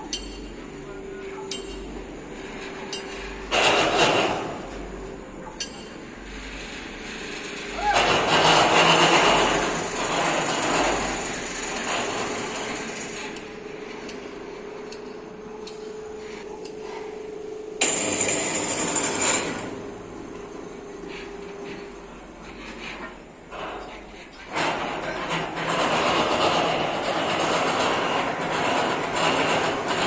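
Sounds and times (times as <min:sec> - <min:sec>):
grinding clattering noise: 0:00.0 - 0:30.0
steady machine hum: 0:00.0 - 0:30.0.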